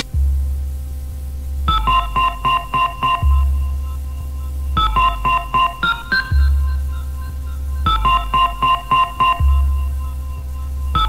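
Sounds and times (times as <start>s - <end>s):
long deep bass note: 0.0s - 11.0s.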